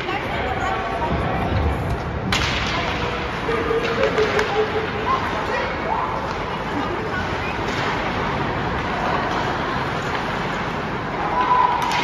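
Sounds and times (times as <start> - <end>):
hockey sticks striking puck: 1.9 - 12.0.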